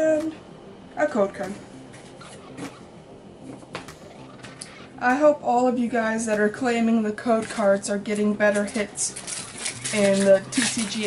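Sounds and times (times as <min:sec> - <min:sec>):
trading cards rustling: 0:08.6 - 0:11.0.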